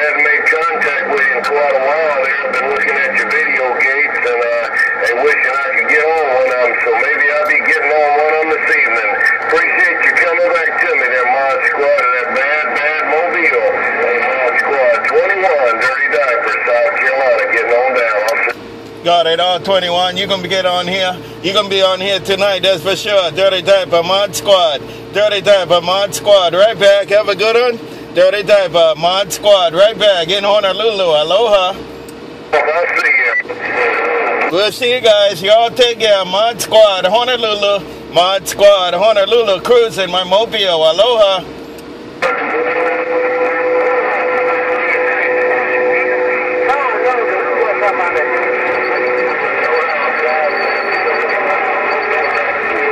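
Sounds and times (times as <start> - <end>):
voice over radio speaker: 0.0 - 31.8, 32.5 - 41.5, 42.2 - 52.9
radio hiss: 0.0 - 52.9
steady whistle tones: 48.2 - 52.9.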